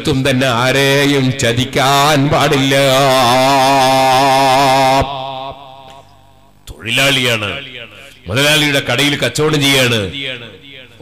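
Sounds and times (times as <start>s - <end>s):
man chanting long note: 1.0s - 5.9s.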